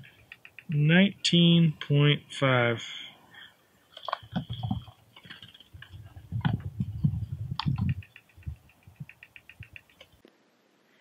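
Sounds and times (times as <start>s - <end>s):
rapid faint ticks: 0.0s - 2.0s, 3.9s - 10.4s.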